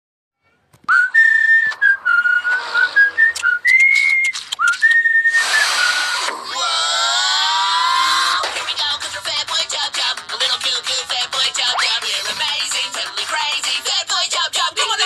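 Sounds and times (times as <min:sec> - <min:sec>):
whistled tune: 0:00.9 - 0:06.3.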